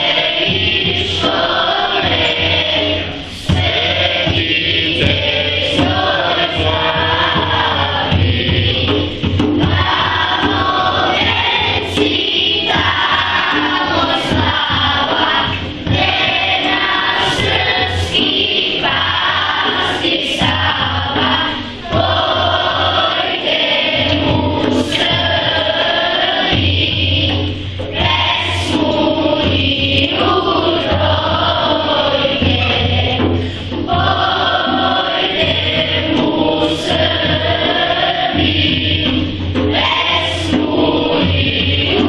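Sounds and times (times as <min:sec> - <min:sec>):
children's choir singing: 0:00.0 - 0:42.0.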